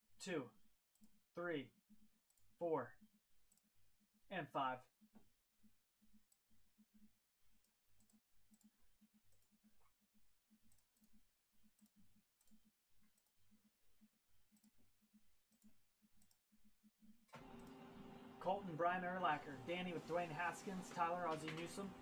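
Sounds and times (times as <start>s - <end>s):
mouse and keyboard clicking: 20.0s - 22.0s.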